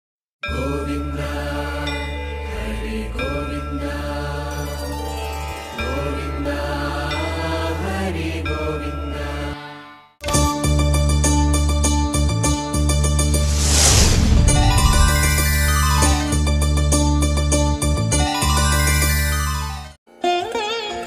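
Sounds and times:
steady low drone: 13.2 - 16.9.

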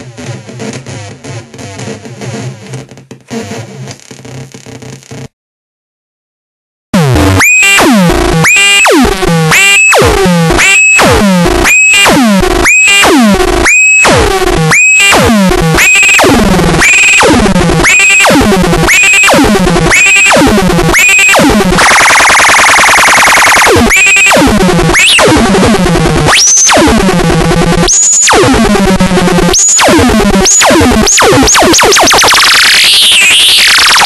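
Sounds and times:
harsh square-wave synth noise: 0.0 - 5.3, 7.0 - 34.0.

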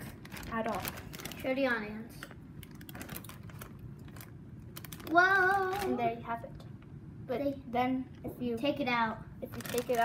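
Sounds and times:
plastic bag clicks and rustling: 0.0 - 6.0, 9.5 - 10.0.

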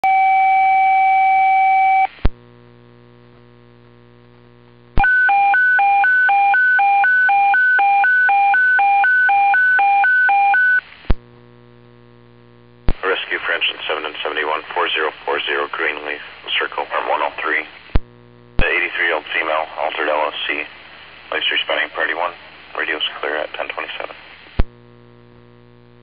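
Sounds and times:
dispatcher speaking: 13.0 - 17.8, 18.6 - 20.7, 21.3 - 24.2.

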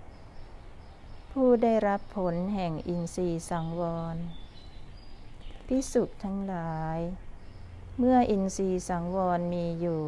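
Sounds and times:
faint background hiss: 0.0 - 10.0
woman reciting in intoned voice: 8.0 - 10.0.

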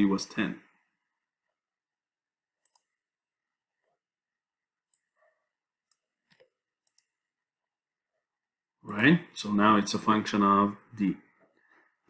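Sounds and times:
computer mouse clicks: 2.6 - 3.0, 5.8 - 7.2.

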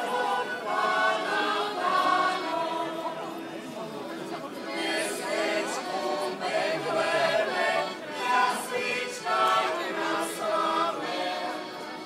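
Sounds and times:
choir singing through loudspeakers: 0.0 - 3.6, 4.6 - 12.0.

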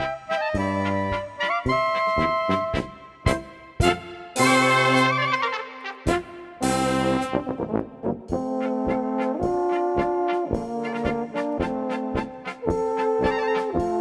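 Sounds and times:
brass band playing polka: 0.0 - 14.0.

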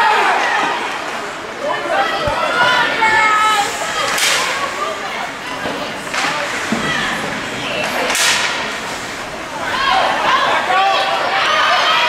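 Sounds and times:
spectators' voices: 0.0 - 12.0
skates scraping ice: 2.5 - 11.5.

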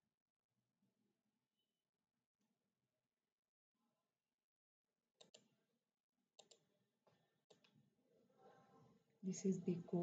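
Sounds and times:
faint computer mouse clicks: 5.2 - 5.5, 6.4 - 7.8.

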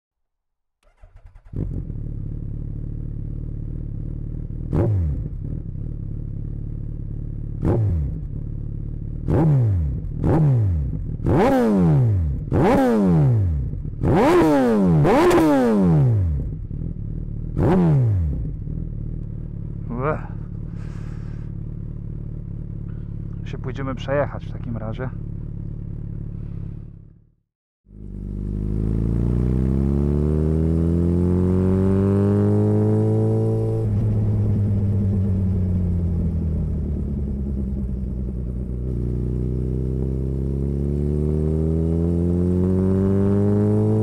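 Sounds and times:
motorcycle engine revving: 0.8 - 44.0.

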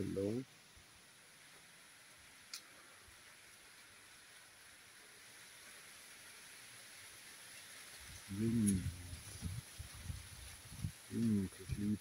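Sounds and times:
faint background hiss: 0.0 - 12.0.

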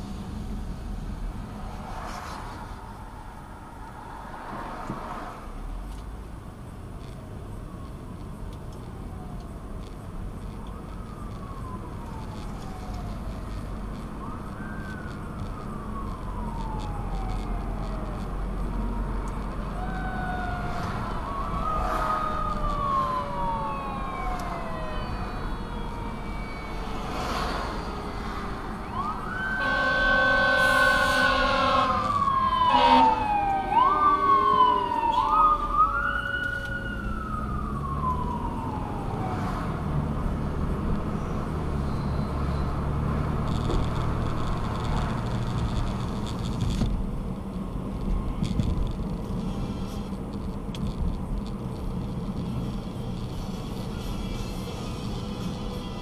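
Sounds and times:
traffic engine rumble: 0.0 - 56.0
fire engine siren wailing: 10.4 - 45.3
air horn blast: 29.5 - 34.5, 49.4 - 50.2.

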